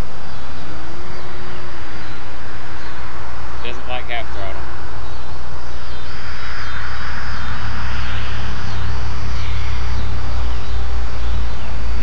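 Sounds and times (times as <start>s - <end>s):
model plane motor droning: 0.0s - 12.0s.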